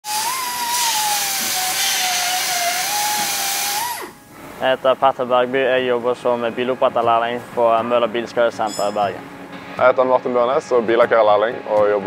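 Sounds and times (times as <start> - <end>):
hiss of grinding metal: 0.0 - 4.2
pneumatic grinder whining: 0.0 - 4.2.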